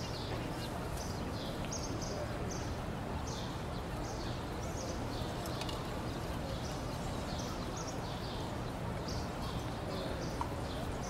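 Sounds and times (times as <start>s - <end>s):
low background noise: 0.0s - 11.0s
small birds chirping: 0.0s - 11.0s.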